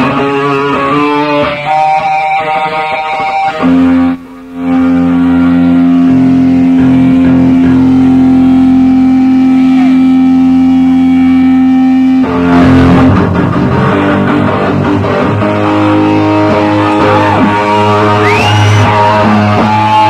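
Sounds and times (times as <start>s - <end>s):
distorted rock band playing: 0.0s - 20.0s.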